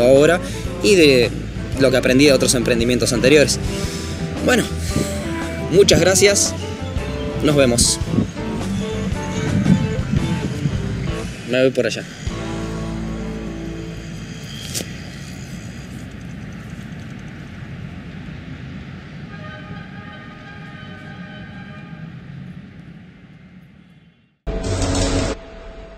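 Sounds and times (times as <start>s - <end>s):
loud outro music: 0.0s - 11.6s, 12.2s - 14.4s, 24.5s - 25.9s
outdoor city noise: 0.0s - 25.9s
faint held horn tone: 19.3s - 22.2s.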